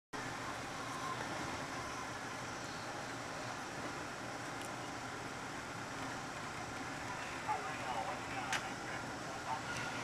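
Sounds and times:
train wheels rolling on rails: 0:00.2 - 0:10.0.

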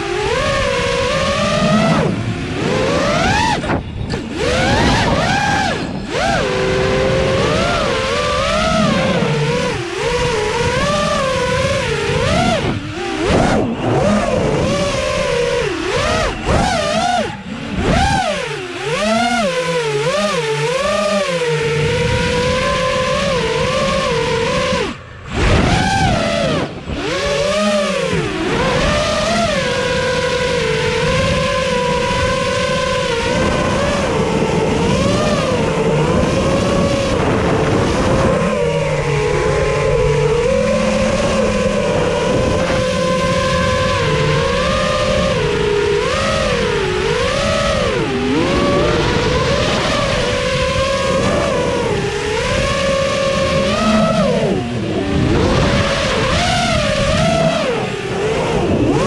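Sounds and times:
drone motors whining: 0:00.0 - 0:59.0.

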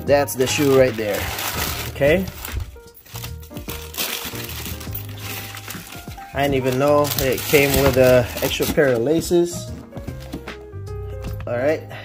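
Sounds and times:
background music: 0:00.0 - 0:12.0
tissue paper rustling: 0:00.2 - 0:10.5.

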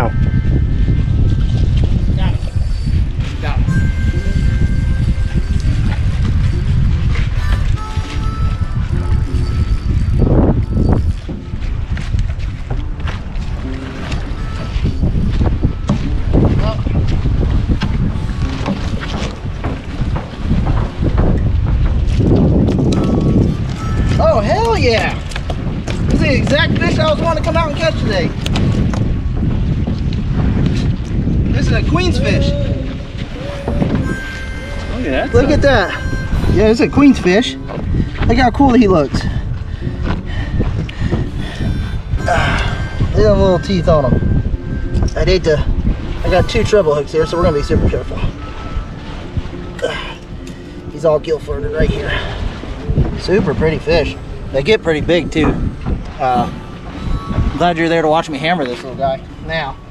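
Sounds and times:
wind buffeting microphone: 0:00.0 - 0:59.9
people shouting: 0:32.1 - 0:36.2.

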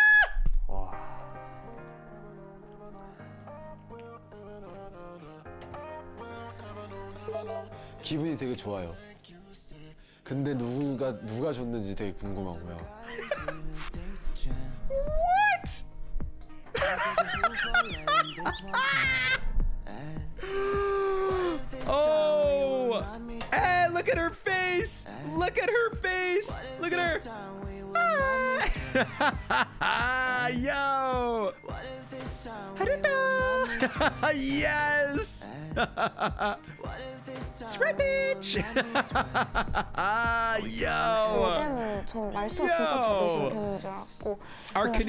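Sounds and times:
man shrieking with excitement: 0:00.0 - 0:00.4, 0:17.0 - 0:19.4, 0:28.0 - 0:28.8
gentle background music: 0:00.1 - 0:45.0
person's higher cry: 0:18.4 - 0:19.4, 0:28.0 - 0:28.8.

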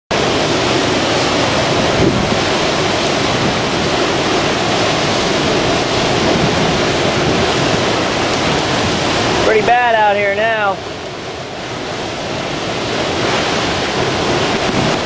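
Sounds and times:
strong wind and driving rain: 0:00.1 - 0:15.0
wind gusts buffeting microphone: 0:00.1 - 0:15.0.

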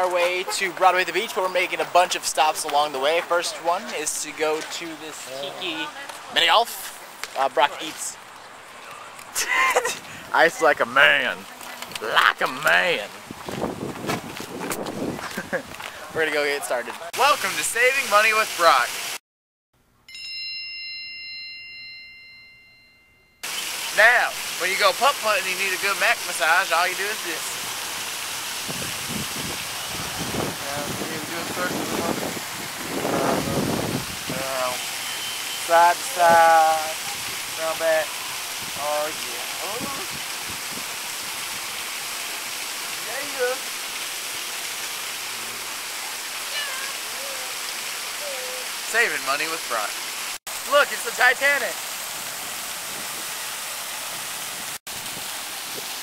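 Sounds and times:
water rushing from water feature: 0:00.0 - 0:19.2, 0:23.4 - 0:56.0
bell ding: 0:20.1 - 0:23.4.

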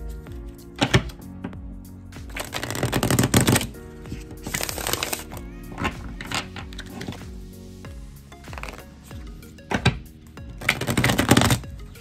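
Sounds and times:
soft background music: 0:00.0 - 0:12.0
cards being shuffled: 0:02.3 - 0:07.3, 0:08.5 - 0:08.9, 0:10.6 - 0:11.6.

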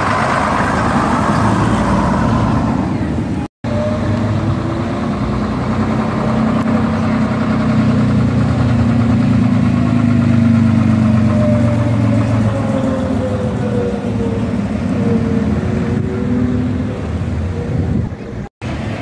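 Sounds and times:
bus diesel engine drone: 0:00.0 - 0:19.0.

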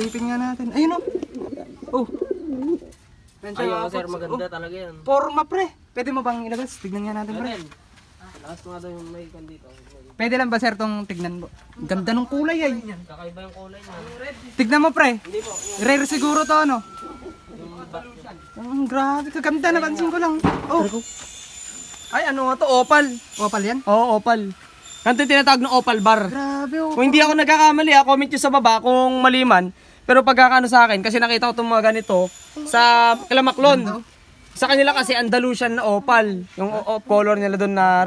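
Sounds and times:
pigeon cooing: 0:00.0 - 0:03.0, 0:16.4 - 0:18.2.

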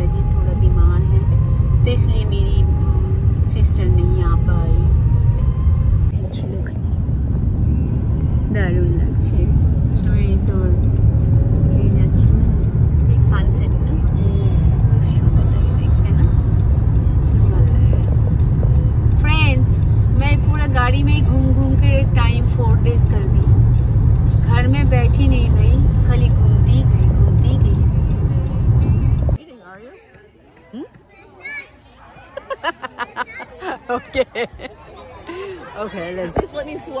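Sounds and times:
car road and engine rumble: 0:00.0 - 0:29.5
faint voices: 0:26.1 - 0:37.0.

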